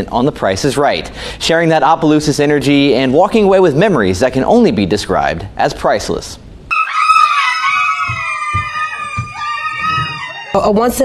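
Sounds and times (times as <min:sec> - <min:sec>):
people screaming in excitement: 0:06.7 - 0:10.8.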